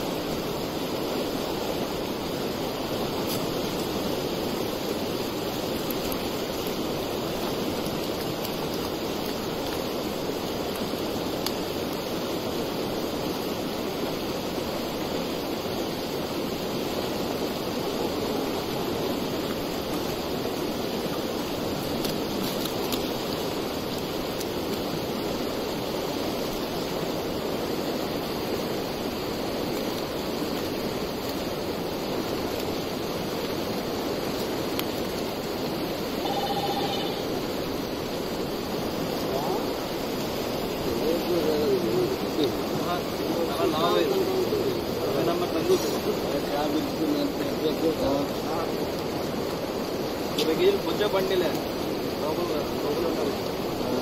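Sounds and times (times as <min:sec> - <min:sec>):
floodwater rushing: 0:00.0 - 0:54.0.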